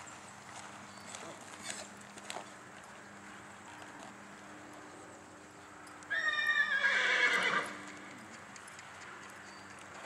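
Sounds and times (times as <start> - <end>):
horse whinnying: 6.1 - 7.8.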